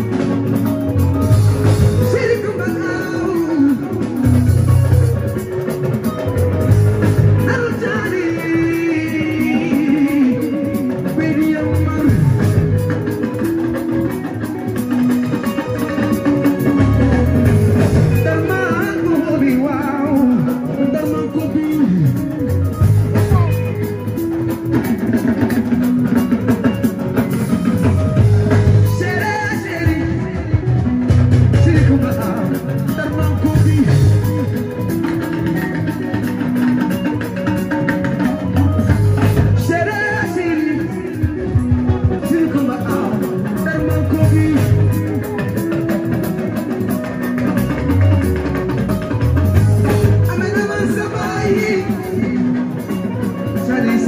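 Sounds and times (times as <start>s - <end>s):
guitar: 0.0s - 54.0s
live band music: 0.0s - 54.0s
steady drum beat: 0.0s - 54.0s
man's voice over sound system: 1.8s - 5.1s, 11.1s - 12.8s, 18.0s - 23.8s, 31.4s - 34.4s, 39.4s - 45.2s.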